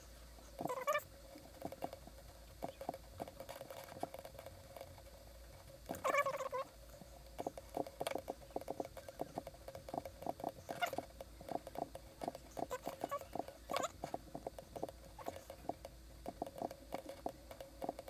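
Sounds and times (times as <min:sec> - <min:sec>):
faint steady hum: 0:00.0 - 0:18.0
computer mouse clicking: 0:07.4 - 0:18.0.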